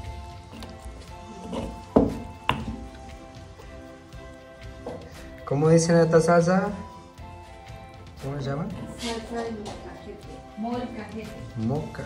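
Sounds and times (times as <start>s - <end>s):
stone pestle grinding in mortar: 0.0s - 3.2s
background music with sustained notes: 0.0s - 12.0s
pestle knocking against stone: 1.5s - 2.9s.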